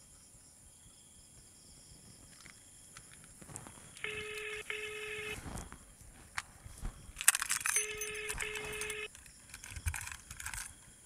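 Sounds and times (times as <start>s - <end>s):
telephone ringback tone: 4.0s - 5.4s, 7.8s - 9.1s.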